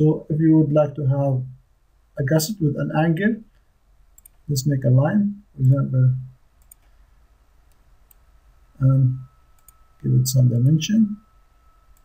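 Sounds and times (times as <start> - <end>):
faint computer mouse clicks: 4.2 - 4.4, 6.6 - 7.0, 9.6 - 9.8.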